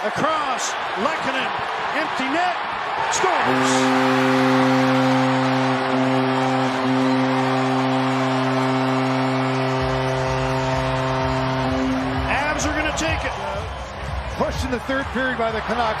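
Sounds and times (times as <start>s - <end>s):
crowd cheering: 0.0s - 16.0s
arena goal horn: 3.0s - 14.1s.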